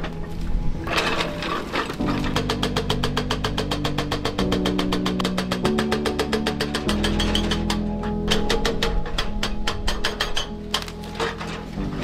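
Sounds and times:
background music: 0.0s - 12.0s
hydraulic breaker hammering concrete: 2.0s - 10.6s.

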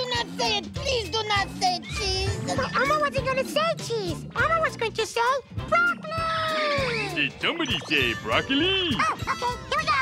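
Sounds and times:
children's music: 0.0s - 10.0s.

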